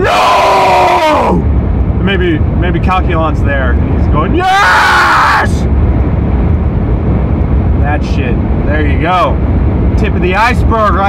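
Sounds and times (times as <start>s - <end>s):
car engine rumble: 0.0s - 11.0s
road noise inside car: 0.0s - 11.0s.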